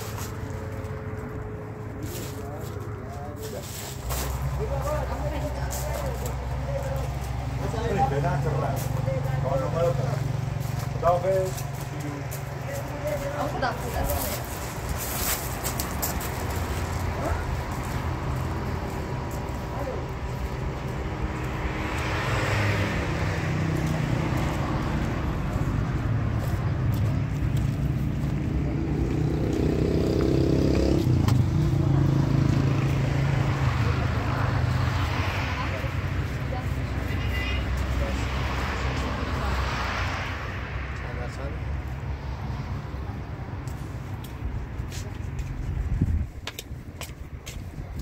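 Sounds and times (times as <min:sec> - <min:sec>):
road traffic rumble: 0:00.0 - 0:48.0
vehicles passing: 0:00.0 - 0:48.0.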